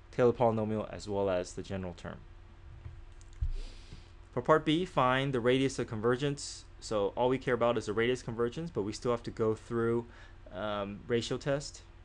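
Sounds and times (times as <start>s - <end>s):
low thump: 2.7s - 3.6s.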